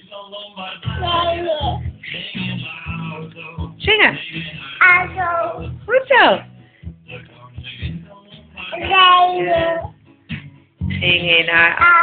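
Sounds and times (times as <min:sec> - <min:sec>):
toddler singing: 0:00.9 - 0:01.9, 0:04.8 - 0:05.7, 0:08.7 - 0:09.9, 0:11.8 - 0:12.0.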